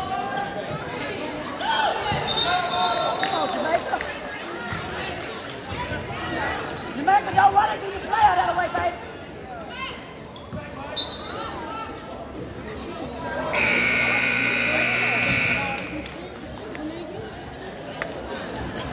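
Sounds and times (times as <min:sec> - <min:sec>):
scoreboard buzzer: 0:13.5 - 0:16.1.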